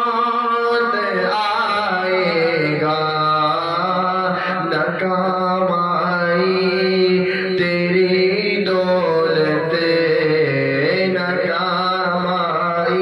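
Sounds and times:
man singing: 0.0 - 13.0.

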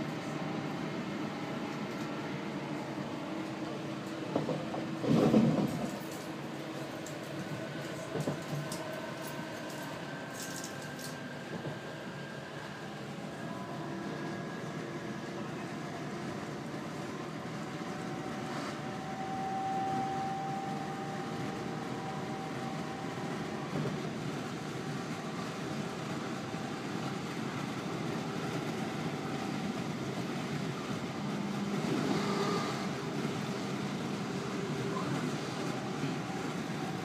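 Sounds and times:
train wheels rumbling on track: 0.0 - 37.0.

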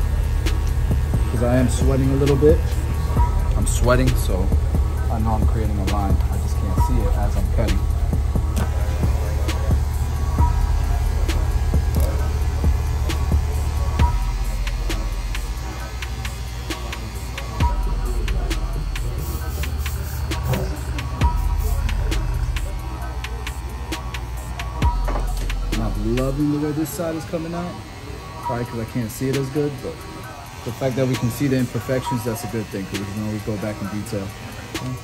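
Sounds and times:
background music with steady beat: 0.0 - 35.0
hair clipper buzzing: 0.0 - 35.0.

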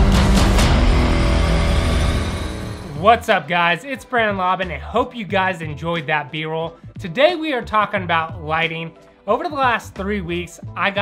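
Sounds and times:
cinematic background music: 0.0 - 11.0.

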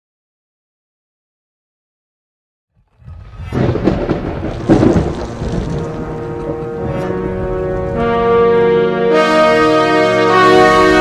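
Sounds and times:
noisy crash sound effect: 2.9 - 7.2.

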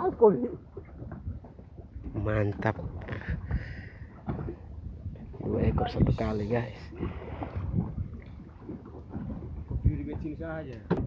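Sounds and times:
water moving around boat: 0.0 - 11.0
wind rumble on microphone: 0.6 - 11.0.

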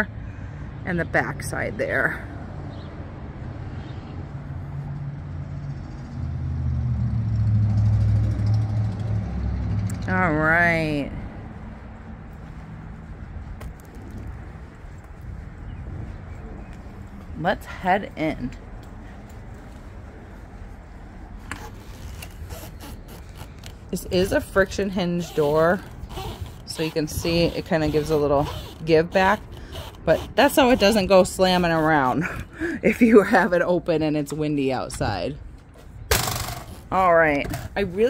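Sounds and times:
vehicle engine rumble: 0.0 - 38.0.

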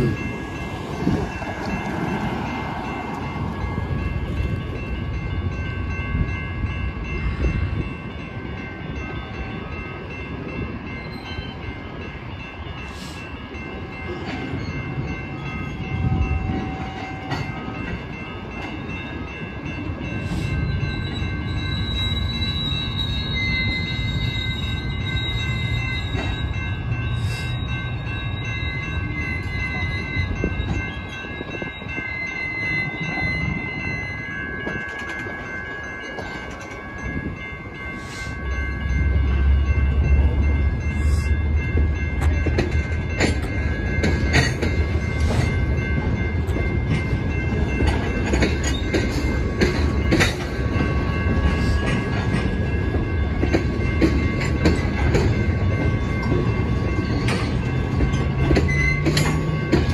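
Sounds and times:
crossing bell ringing: 0.0 - 59.9
train wheels rumbling: 0.0 - 59.9
wheels clicking over rail joints: 34.2 - 41.0, 41.6 - 59.9.

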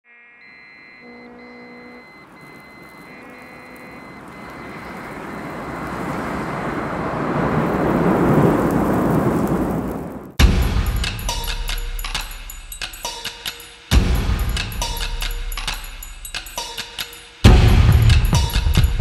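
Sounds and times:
soft synthesizer tones: 0.3 - 4.7
rushing wind noise: 2.3 - 10.4.

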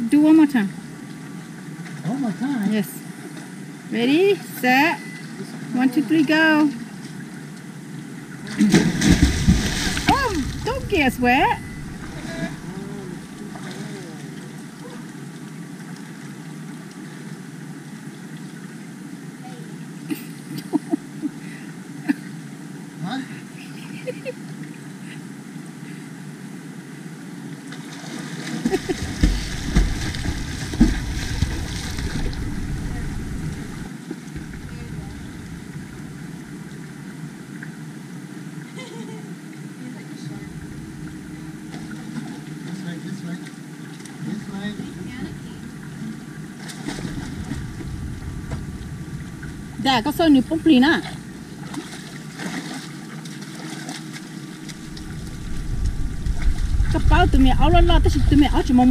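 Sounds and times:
river water rushing: 8.4 - 17.8, 27.9 - 37.6, 44.4 - 56.9
water splashing: 8.4 - 18.8, 27.7 - 37.8, 40.2 - 58.9
low rumble: 8.7 - 14.5, 28.7 - 37.3, 40.4 - 42.0, 44.8 - 52.4, 54.6 - 58.9.

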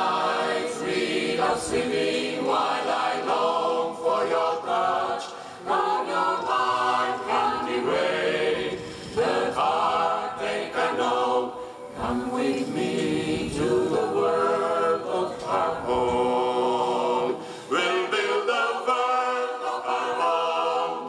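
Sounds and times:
mixed choir singing a cappella: 0.0 - 21.0.

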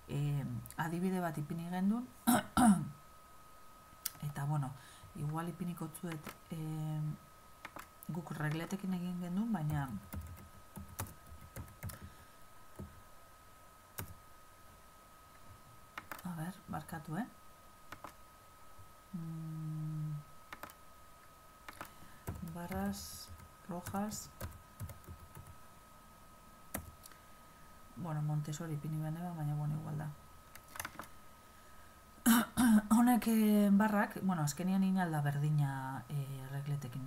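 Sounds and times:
faint high-pitched whine: 0.0 - 37.0
woman clearing her throat: 2.3 - 2.9, 32.2 - 32.9
person humming low: 19.1 - 20.3.

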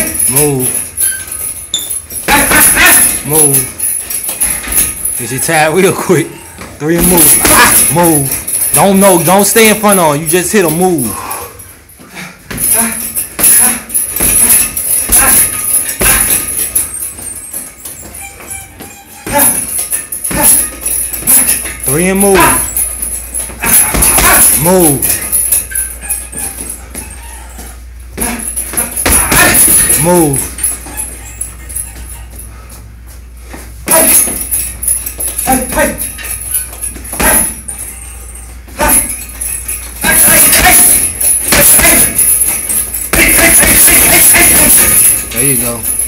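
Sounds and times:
chains jingling: 0.0 - 11.8, 12.5 - 32.9, 33.8 - 46.0
punching bag thuds: 13.4 - 16.7, 23.6 - 24.6, 28.2 - 30.0, 40.0 - 45.0.

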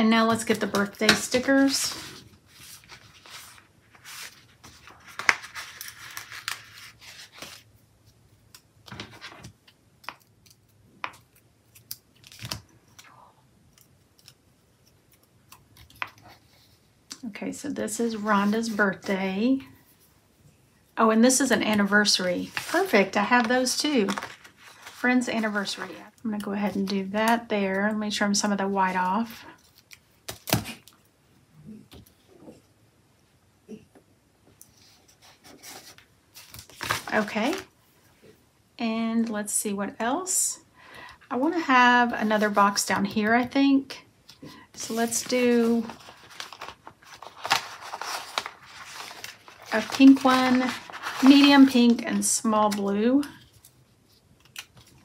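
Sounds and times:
paper sticker sheets rustling: 0.2 - 7.6, 21.3 - 27.8, 44.2 - 55.0.

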